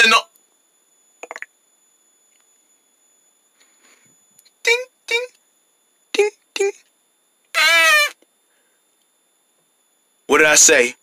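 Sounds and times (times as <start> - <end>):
faint steady high whine: 0.0 - 11.0.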